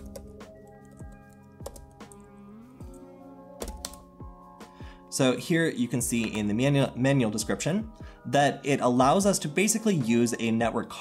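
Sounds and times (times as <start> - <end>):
keyboard typing: 0.0 - 2.3, 3.6 - 4.1
background music of held notes: 0.0 - 11.0.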